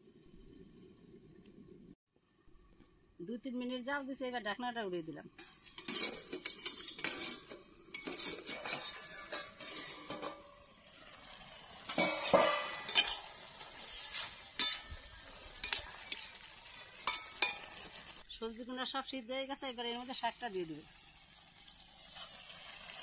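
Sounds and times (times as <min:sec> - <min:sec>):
metal pan lid clank: 0:05.4 - 0:10.7, 0:11.9 - 0:13.4, 0:14.6 - 0:15.0
utensils clinking: 0:05.4 - 0:10.7, 0:11.9 - 0:13.4
metal spatula scraping pan: 0:05.4 - 0:18.2.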